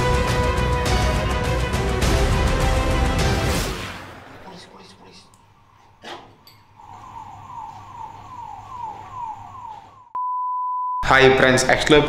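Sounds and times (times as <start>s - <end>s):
steady one-pitch beep: 10.1s - 11.0s
short beeps falling in pitch: 10.2s - 11.0s.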